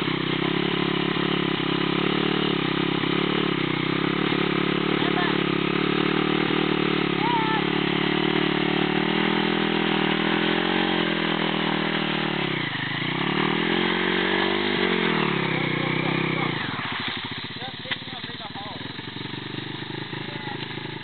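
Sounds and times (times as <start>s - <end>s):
motorcycle engine running steadily: 0.0s - 21.0s.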